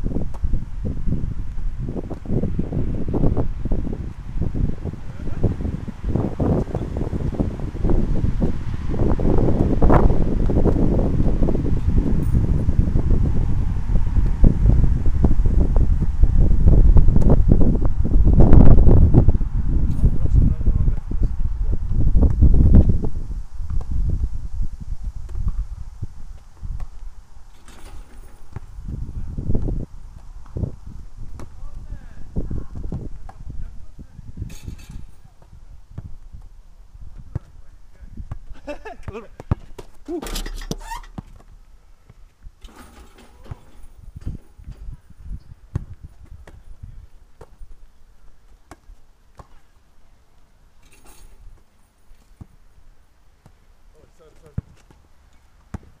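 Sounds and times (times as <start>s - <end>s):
wind buffeting microphone: 0.0s - 49.0s
ball thuds and knocks: 31.3s - 31.6s.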